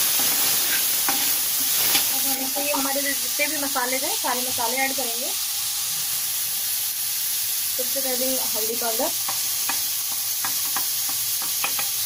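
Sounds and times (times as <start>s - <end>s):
tomatoes sizzling in oil: 0.0s - 12.0s
utensil clicking against pan: 9.2s - 12.0s.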